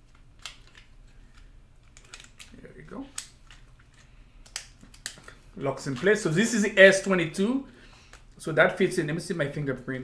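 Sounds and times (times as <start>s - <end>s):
snap-clip clicks: 0.1s - 3.7s, 4.4s - 6.1s.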